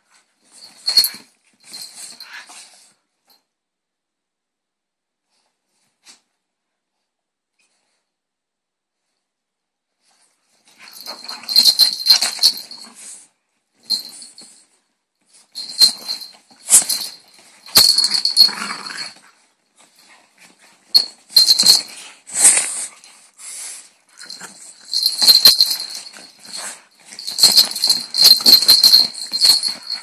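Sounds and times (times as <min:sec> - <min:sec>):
dogs play-fighting: 0:00.1 - 0:03.0, 0:10.1 - 0:30.0
collar bell and tags jingling: 0:00.5 - 0:02.6, 0:10.7 - 0:13.2, 0:13.8 - 0:19.3, 0:19.9 - 0:23.2, 0:24.1 - 0:30.0.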